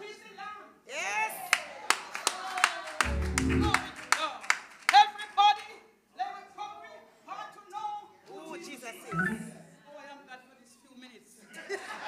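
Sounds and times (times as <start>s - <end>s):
congregation clapping: 1.5s - 5.6s.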